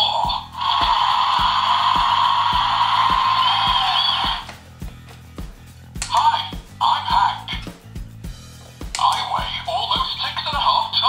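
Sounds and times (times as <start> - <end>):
toy speaker sound effect: 0.0 - 4.5, 6.0 - 7.6, 9.0 - 11.0
background music with steady beat: 0.0 - 11.0.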